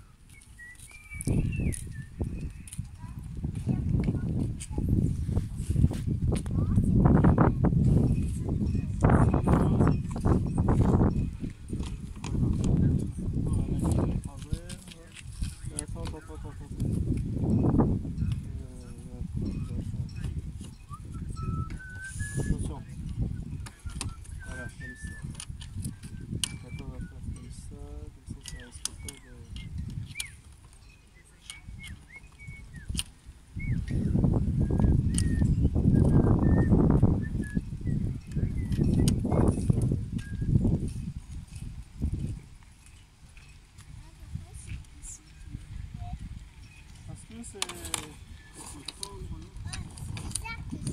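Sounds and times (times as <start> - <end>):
rigging and sail rattling: 0.0 - 50.9
wind buffeting microphone: 0.0 - 50.9.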